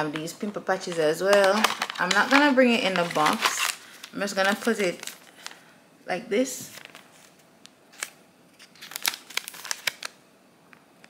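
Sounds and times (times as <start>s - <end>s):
plastic sheet crinkling and crackling: 0.0s - 5.6s, 6.6s - 10.2s.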